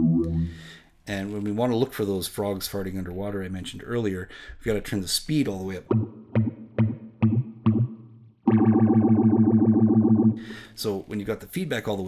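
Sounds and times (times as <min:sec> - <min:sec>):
electric guitar chord with phaser: 0:00.0 - 0:00.6, 0:08.5 - 0:10.5.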